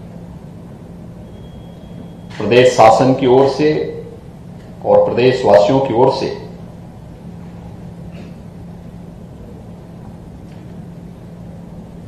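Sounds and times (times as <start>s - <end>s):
low room hum: 0.0s - 12.0s
person speaking: 4.8s - 6.6s.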